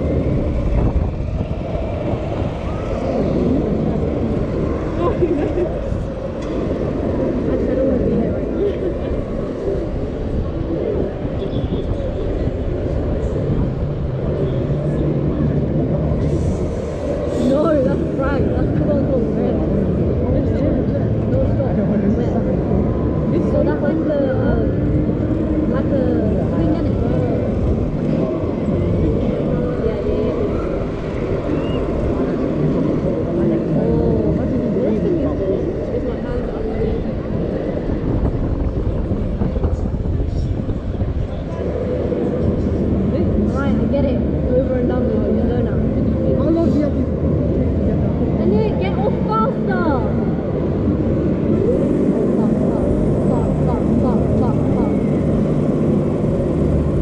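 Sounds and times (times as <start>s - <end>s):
wind rumbling on microphone: 0.0s - 57.0s.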